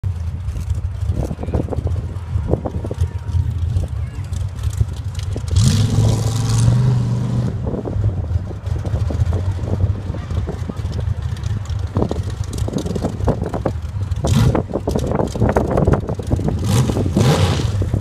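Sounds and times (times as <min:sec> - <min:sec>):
off-road vehicle engines running: 0:00.0 - 0:18.0
engine revving up: 0:04.7 - 0:07.7, 0:16.6 - 0:18.0.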